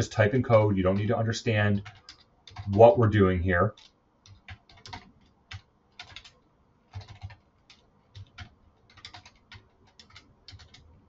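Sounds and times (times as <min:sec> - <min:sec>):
computer keyboard key clicks: 0:01.8 - 0:02.8, 0:03.7 - 0:10.9.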